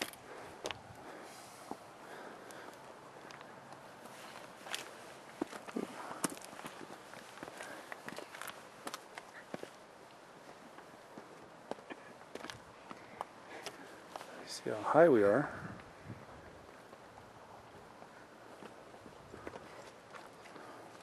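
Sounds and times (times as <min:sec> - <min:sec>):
footsteps on rocky ground: 0:00.0 - 0:14.8, 0:18.0 - 0:21.0.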